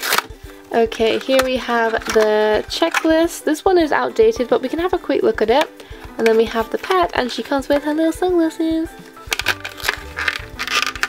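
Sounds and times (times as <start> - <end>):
plastic packaging crinkling: 0.0 - 0.4, 9.2 - 11.0
background music: 0.0 - 11.0.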